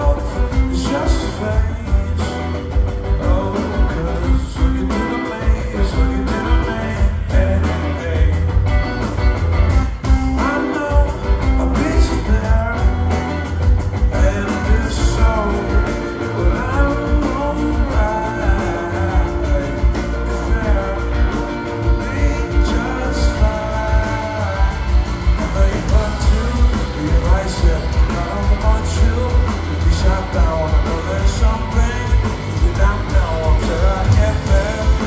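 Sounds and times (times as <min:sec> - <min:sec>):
bass and kick drum: 0:00.0 - 0:35.0
live rock band playing: 0:00.0 - 0:35.0
man singing lead vocals: 0:00.0 - 0:35.0.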